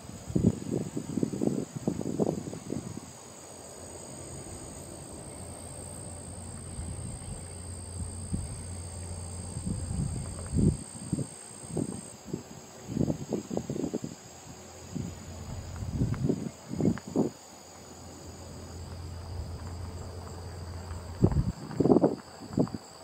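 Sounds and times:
high-pitched insect chorus: 0:00.0 - 0:23.0
low bumps and rustles: 0:04.4 - 0:11.2, 0:14.9 - 0:17.0, 0:18.2 - 0:22.8.

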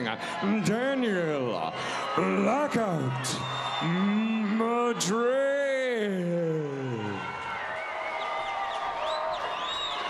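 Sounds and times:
crowd cheering: 0:00.0 - 0:10.0.

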